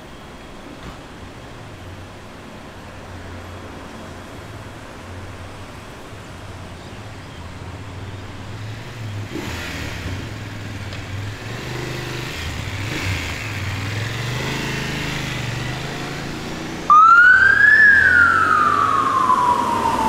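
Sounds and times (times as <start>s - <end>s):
vehicle engines in traffic: 0.0s - 20.0s
siren wailing: 16.9s - 20.0s.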